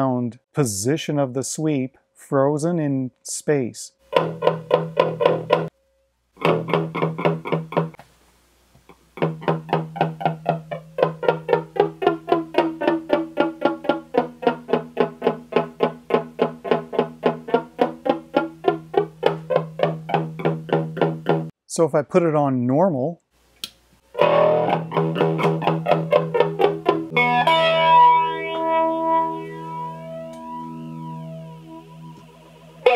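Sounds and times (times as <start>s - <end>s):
electric guitar with flanger: 4.1s - 5.7s, 6.4s - 8.0s, 9.2s - 21.5s, 24.1s - 32.9s.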